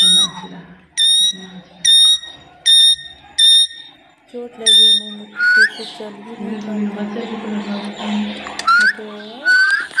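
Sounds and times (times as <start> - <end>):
parakeet shrill calls: 0.0 - 3.9, 4.6 - 5.9.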